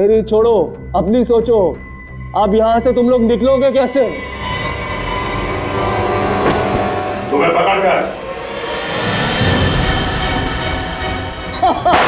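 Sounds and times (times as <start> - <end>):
dramatic score sting: 4.7 - 11.4.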